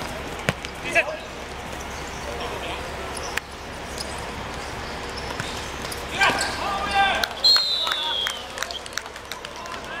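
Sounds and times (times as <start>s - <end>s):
ball and feet thudding on court: 0.4s - 0.8s
players shouting: 5.8s - 10.0s
high whistle: 7.4s - 8.8s.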